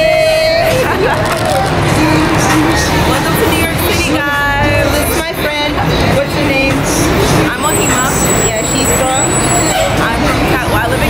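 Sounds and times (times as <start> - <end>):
city street traffic: 0.0 - 11.0
people talking: 0.0 - 11.0.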